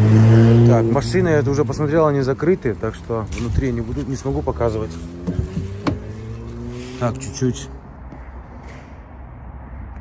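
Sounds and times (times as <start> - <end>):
vehicle engine accelerating: 0.0 - 1.9, 2.7 - 8.0.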